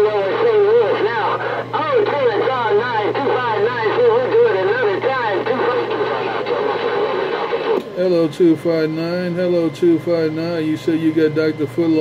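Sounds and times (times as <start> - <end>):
garbled voice over radio: 0.0 - 7.8
radio static: 0.0 - 12.0.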